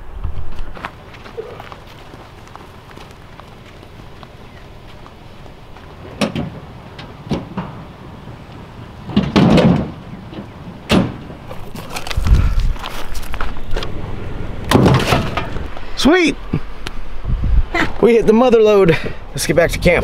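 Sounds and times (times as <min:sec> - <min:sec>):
firewood dropped into truck bed: 0:09.1 - 0:10.0, 0:14.7 - 0:15.8
low rumble: 0:11.6 - 0:18.0.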